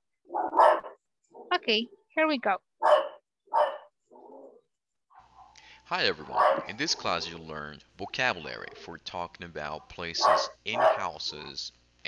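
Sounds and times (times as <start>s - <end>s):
dog barking: 0.3s - 1.0s, 2.8s - 3.9s, 5.1s - 7.2s, 9.7s - 11.6s.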